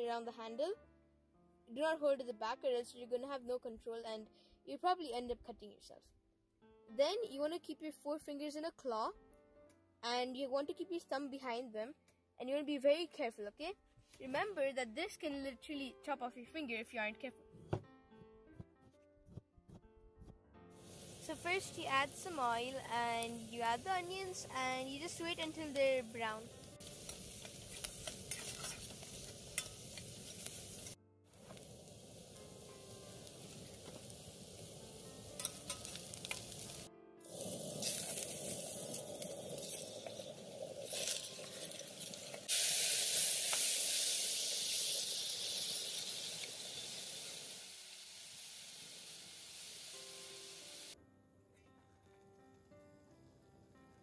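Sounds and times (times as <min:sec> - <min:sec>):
quiet music: 0:00.0 - 0:42.6, 0:50.0 - 0:54.0
onions sizzling in oil: 0:20.8 - 0:51.0
metal spoon clinking against pot: 0:35.4 - 0:36.0.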